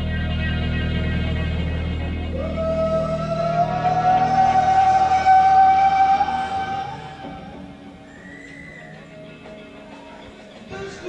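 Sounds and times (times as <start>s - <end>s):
live rock band held note: 0.0s - 11.0s.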